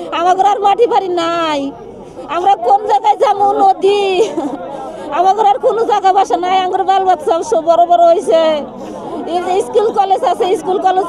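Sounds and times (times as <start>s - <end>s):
woman sobbing and wailing: 2.2s - 6.2s.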